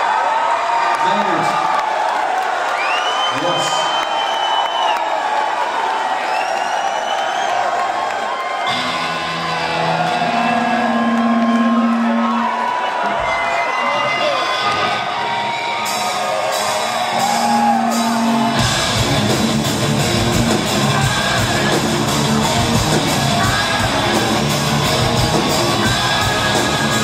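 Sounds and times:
crowd cheering and whistling: 0.0 - 27.0.

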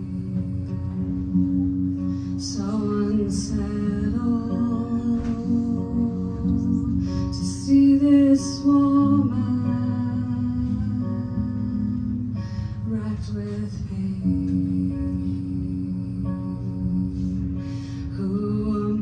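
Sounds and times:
electric guitar: 0.0 - 19.0
person singing: 0.0 - 19.0.

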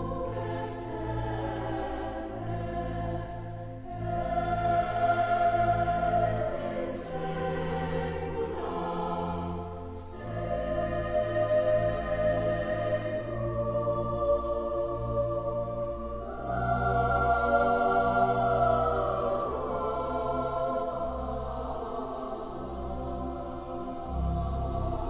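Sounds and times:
choir singing held chords: 0.0 - 25.0.

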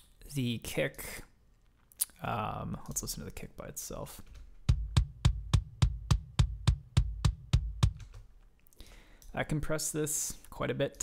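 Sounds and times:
compressed kick drum beats: 4.6 - 8.2.

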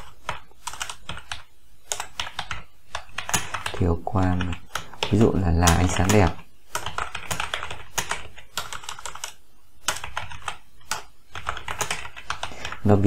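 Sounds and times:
computer keyboard typing: 0.0 - 13.0.

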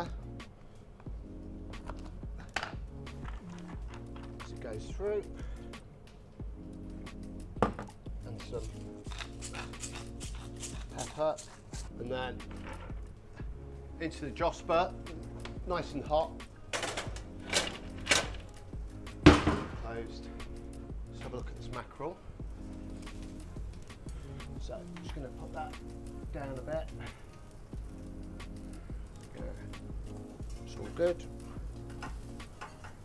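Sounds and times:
background music: 0.0 - 33.0
knock: 7.6 - 7.9, 19.3 - 19.8
knife on wooden chopping board: 8.7 - 11.8
heavy oven door clunk: 19.3 - 19.9.

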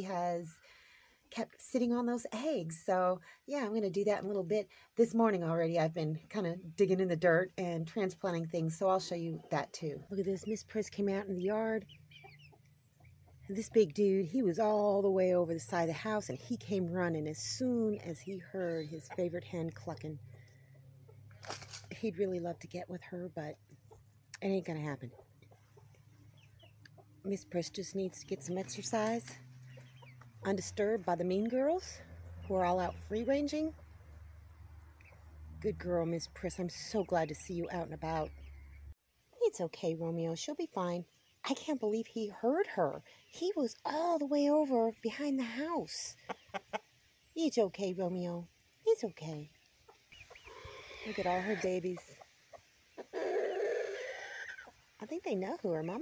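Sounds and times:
chickens clucking: 8.7 - 13.7, 23.4 - 34.1, 46.0 - 47.0, 49.6 - 56.0
chicken raspy call: 50.1 - 54.9.

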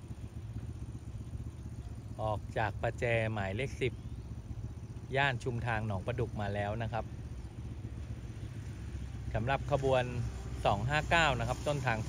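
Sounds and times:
engine rumble: 0.0 - 12.0.

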